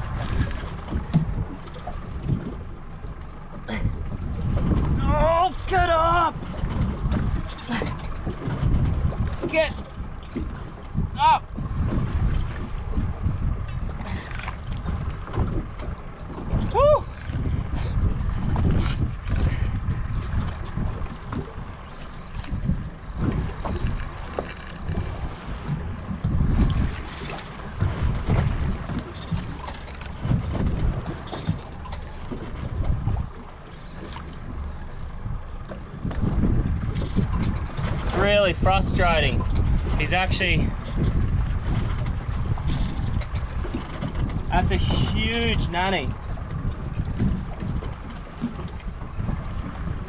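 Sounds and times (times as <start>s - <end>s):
gusty wind buffeting microphone: 0.0s - 50.0s.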